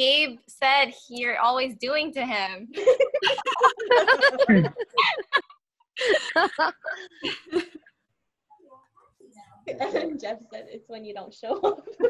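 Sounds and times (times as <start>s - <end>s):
people laughing: 2.8s - 7.8s, 11.5s - 12.0s.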